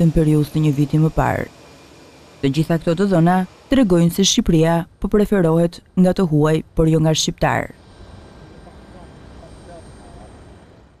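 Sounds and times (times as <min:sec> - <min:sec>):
distant jet engines: 0:00.0 - 0:05.5, 0:06.2 - 0:11.0.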